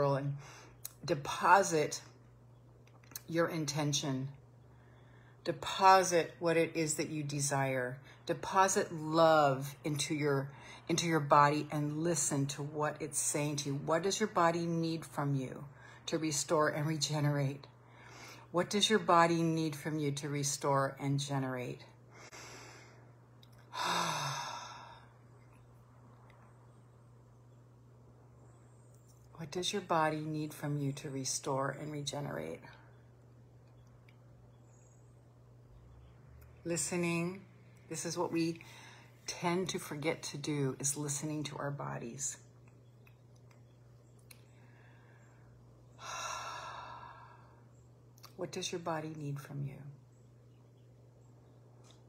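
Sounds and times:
woman breathing deeply: 22.1 - 23.1, 44.6 - 47.7
long sigh: 23.7 - 25.1.

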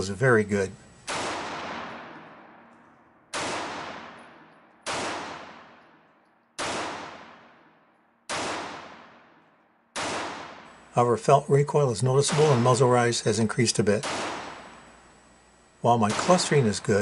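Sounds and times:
pistol shots echoing: 1.0 - 10.9, 12.2 - 15.1, 16.0 - 17.0.

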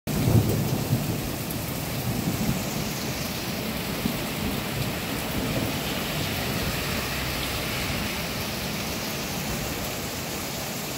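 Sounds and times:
heavy rain pouring: 0.1 - 10.9.

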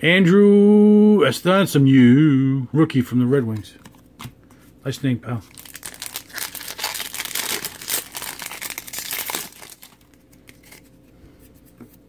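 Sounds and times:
card pack wrapper tearing: 5.4 - 10.9.

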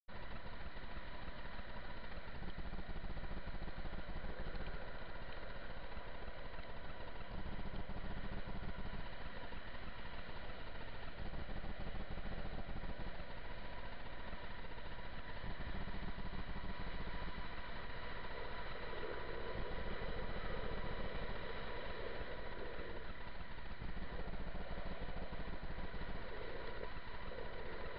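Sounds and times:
longboard wheels rolling on asphalt: 7.6 - 27.9.

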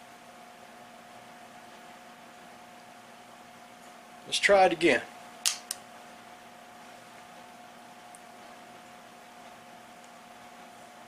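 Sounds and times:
rifle hammer clicking: 5.4 - 5.8.

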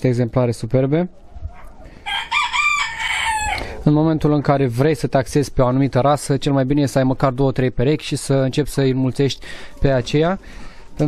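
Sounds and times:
rooster crowing: 1.5 - 3.8.

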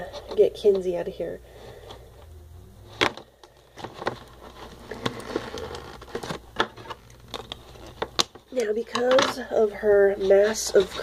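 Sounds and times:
packaging rustling: 2.9 - 8.6
plastic packaging clicks and taps: 6.2 - 9.3.

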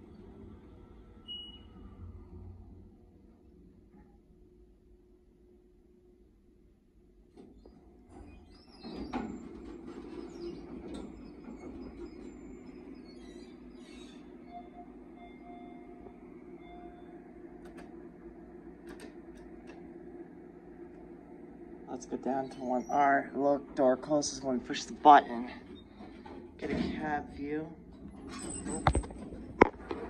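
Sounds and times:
elevator doors sliding open: 0.0 - 3.2, 7.4 - 18.0, 22.3 - 30.0
steady low hum: 10.6 - 30.0.

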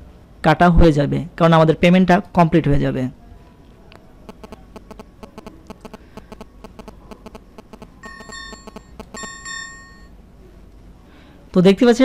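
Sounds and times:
short electronic chimes: 5.8 - 10.1.

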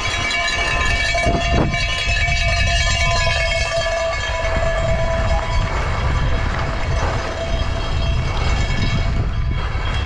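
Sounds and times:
high whine from bike: 0.0 - 10.0
tyres rumbling over gravel: 0.0 - 10.0
wind on microphone: 0.0 - 10.0.

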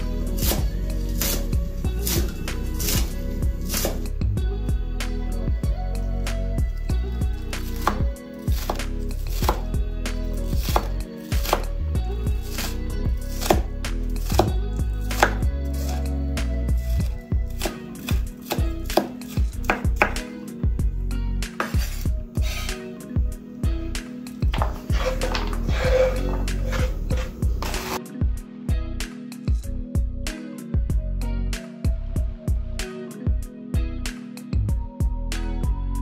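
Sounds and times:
background music: 0.0 - 36.0
knife slicing on cutting board: 0.4 - 4.0, 7.7 - 9.7, 10.5 - 11.7, 12.5 - 14.5, 15.1 - 16.0, 17.6 - 20.2, 21.6 - 22.9, 24.5 - 28.0.

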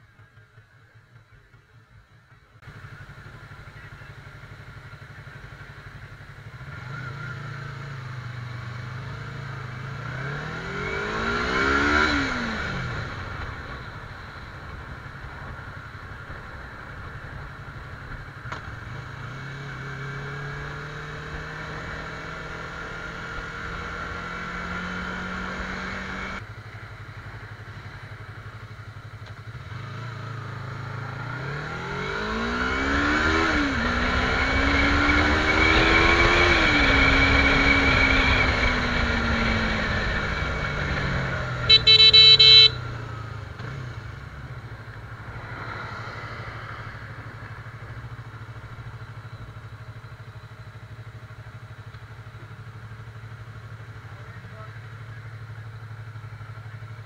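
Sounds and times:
motorcycle engine accelerating: 0.0 - 57.0
loud vehicle horn blast: 41.7 - 42.8.

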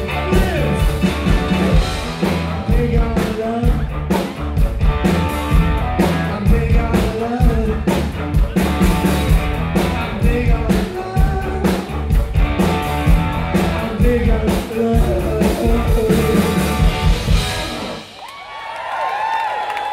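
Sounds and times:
man singing lead: 0.0 - 4.8, 6.0 - 12.3, 13.3 - 17.2
drum kit steady beat: 0.0 - 18.2
electric guitars: 0.0 - 18.2
keyboards: 0.0 - 18.2.

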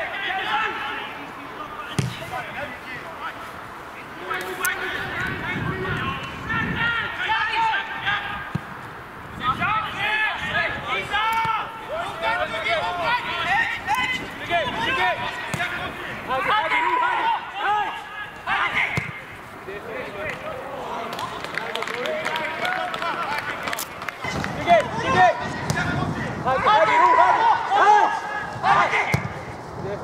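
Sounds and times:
players shouting: 0.0 - 3.3, 4.0 - 8.7, 9.4 - 29.5
ball being kicked: 2.0 - 2.3, 18.9 - 19.2, 29.1 - 29.4.

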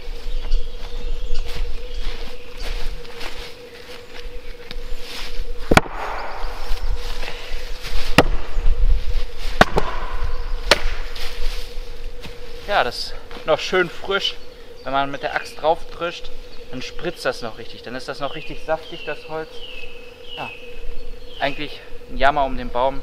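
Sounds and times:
axe striking logs: 5.6 - 6.4, 8.1 - 8.5, 9.6 - 11.2.

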